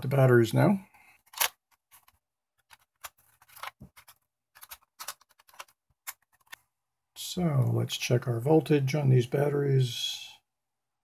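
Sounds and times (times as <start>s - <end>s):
batteries rubbing: 1.2s - 6.6s
plastic clicks and scrapes: 1.2s - 6.6s.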